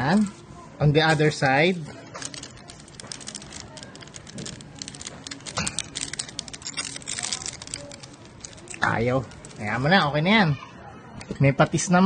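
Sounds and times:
aluminium foil crinkling: 1.2 - 10.2.

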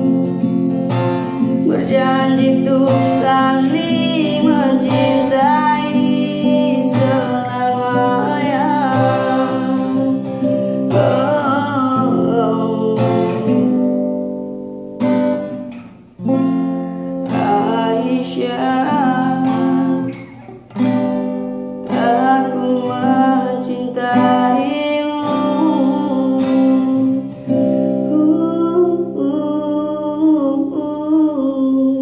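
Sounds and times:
acoustic guitar strumming chords: 0.0 - 32.0
person singing: 1.3 - 14.1, 17.2 - 20.5, 21.8 - 32.0.

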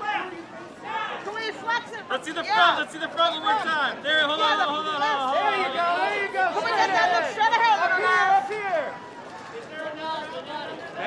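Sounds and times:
faint voices and chatter: 0.0 - 11.0
photographers shouting: 0.0 - 11.0.

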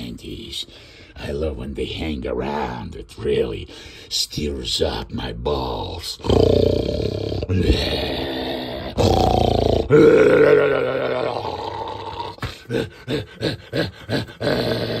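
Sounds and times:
man making wordless vocal sounds: 0.0 - 15.0
man laughing: 9.9 - 15.0.

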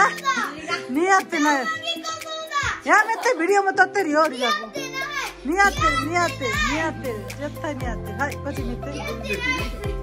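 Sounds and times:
children laughing: 0.0 - 0.9
background music: 0.0 - 10.0.

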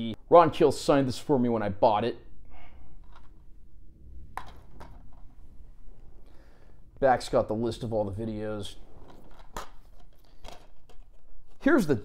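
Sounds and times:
low room rumble: 0.0 - 11.6
plastic case handling noise: 3.0 - 3.5, 4.3 - 5.4, 9.0 - 11.6.

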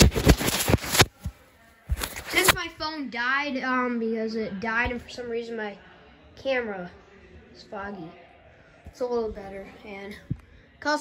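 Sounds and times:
background noise: 0.0 - 11.0.

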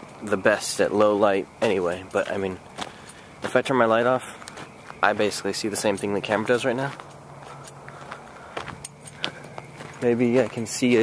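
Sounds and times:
footsteps on a path: 1.0 - 11.0
jingling of carried gear: 1.8 - 3.6, 5.8 - 11.0.

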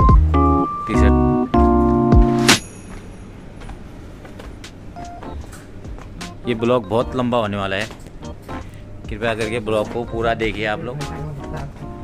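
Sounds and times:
low mall interior hum: 0.0 - 12.0.

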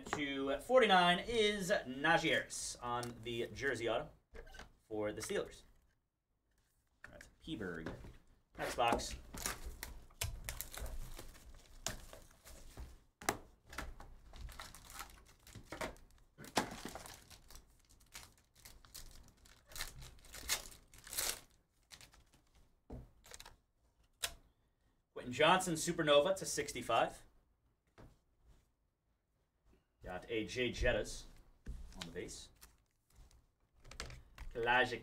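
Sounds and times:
plastic wrap crinkling and tearing: 9.2 - 12.4, 14.4 - 22.6.

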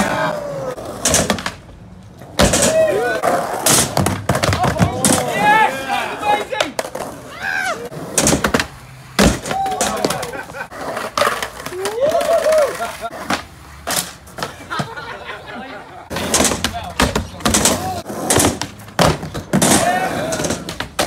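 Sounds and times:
voices shouting and chattering: 0.0 - 1.0, 2.4 - 3.7, 4.4 - 13.8, 14.4 - 18.2, 19.6 - 20.8
skateboards clacking and landing: 0.0 - 21.0.

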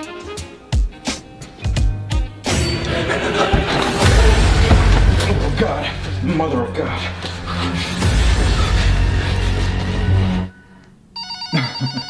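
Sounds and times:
loud low rumble: 2.8 - 9.3
telephone ringing: 11.2 - 12.0.

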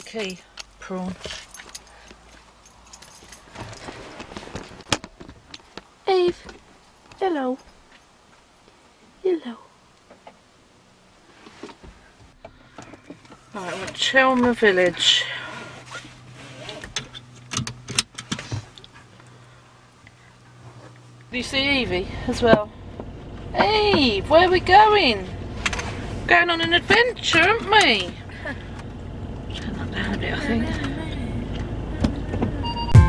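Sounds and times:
low steady hum: 4.4 - 33.0
sharp clicks and knocks: 16.8 - 18.9.

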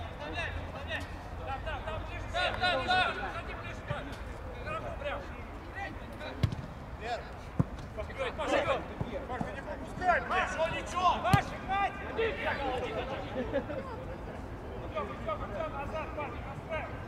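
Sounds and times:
football being kicked: 6.4 - 6.7
players shouting: 8.2 - 13.2.

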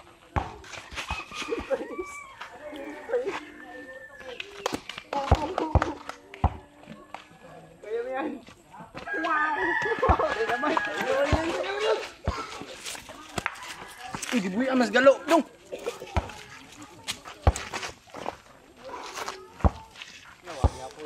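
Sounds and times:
people talking and calling out: 0.0 - 21.0.

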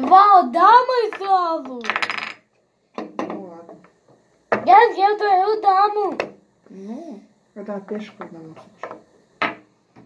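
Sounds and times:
chess pieces clacking on board: 1.8 - 2.4.

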